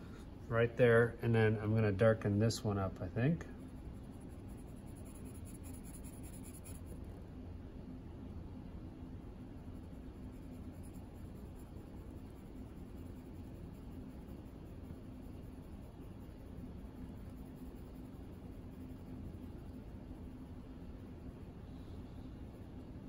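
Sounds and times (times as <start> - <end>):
low steady hum: 0.0 - 23.0
pencil scratching on paper: 3.6 - 7.0, 9.8 - 19.8.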